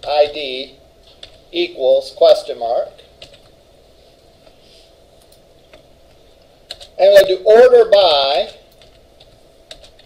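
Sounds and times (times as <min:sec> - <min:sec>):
typing on keyboard: 0:03.2 - 0:03.5, 0:06.7 - 0:07.0, 0:08.4 - 0:10.0.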